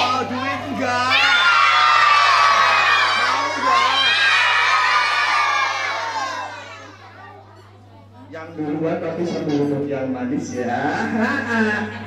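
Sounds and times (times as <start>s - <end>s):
children shouting and cheering: 0.8s - 7.4s.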